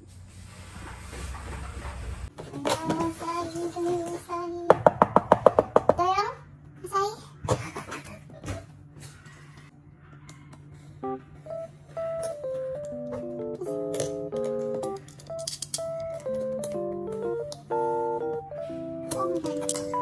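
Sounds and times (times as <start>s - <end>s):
light melody with chords: 11.0s - 20.0s.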